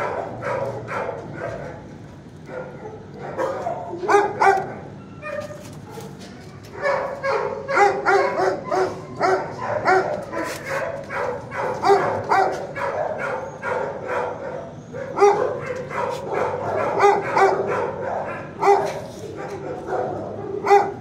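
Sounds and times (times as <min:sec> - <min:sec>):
dogs barking: 0:00.0 - 0:21.0.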